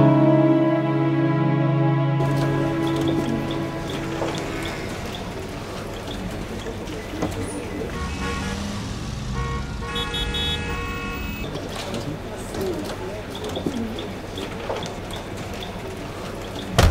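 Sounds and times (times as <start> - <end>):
rumble of passing cars: 2.2 - 13.1
car horn: 7.8 - 11.5.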